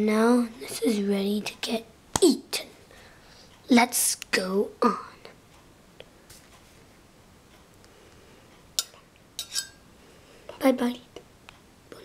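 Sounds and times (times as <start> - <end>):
faint tick: 11.2 - 11.7.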